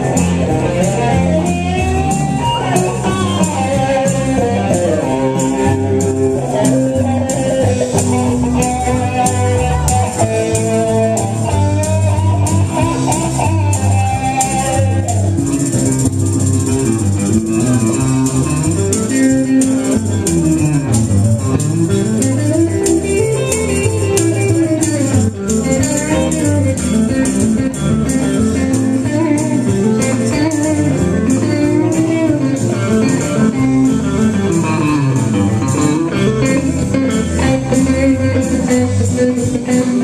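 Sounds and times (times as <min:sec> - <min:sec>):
tambourine shaken: 0:00.0 - 0:34.0
electric guitar lead: 0:00.0 - 0:40.0.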